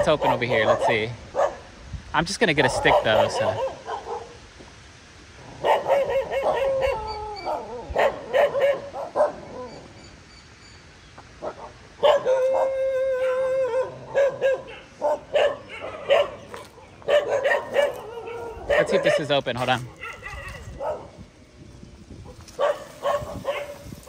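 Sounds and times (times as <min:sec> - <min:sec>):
dogs barking: 0:00.0 - 0:01.7, 0:02.6 - 0:04.4, 0:05.5 - 0:09.9, 0:11.4 - 0:21.3, 0:22.2 - 0:24.0
dog long held call: 0:05.6 - 0:10.1, 0:11.4 - 0:19.2.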